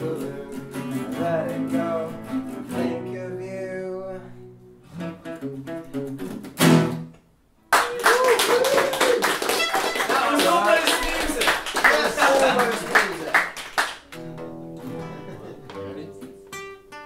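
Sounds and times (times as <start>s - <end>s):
acoustic guitars strumming: 0.0s - 7.2s, 14.0s - 17.0s
audience clapping: 7.7s - 14.4s
audience voices: 9.4s - 13.5s.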